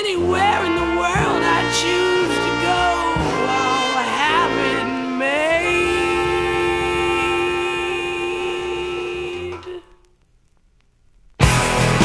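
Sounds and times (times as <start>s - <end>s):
held chord from vinyl record: 0.0s - 10.3s
vinyl surface crackle and clicks: 9.6s - 11.4s.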